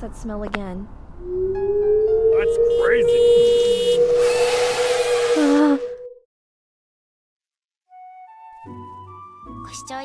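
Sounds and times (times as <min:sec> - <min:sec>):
steady held tone: 0:01.2 - 0:06.2.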